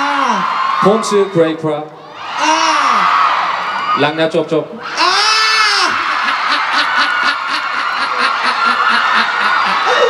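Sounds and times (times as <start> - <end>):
man laughing: 5.8 - 10.0
room of people laughing: 5.9 - 10.0.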